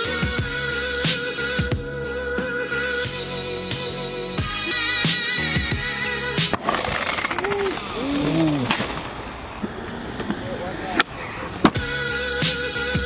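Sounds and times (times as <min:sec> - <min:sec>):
skateboard wheels rolling on concrete: 0:04.6 - 0:13.0
skateboard clacking on concrete: 0:06.5 - 0:11.9.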